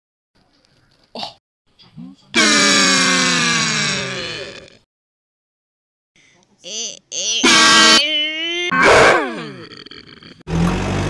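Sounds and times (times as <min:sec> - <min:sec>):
short cartoon vocal noises: 0:06.6 - 0:10.4.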